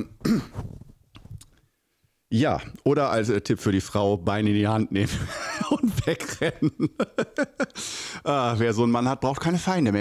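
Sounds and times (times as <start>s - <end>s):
man chuckling: 5.1s - 7.8s.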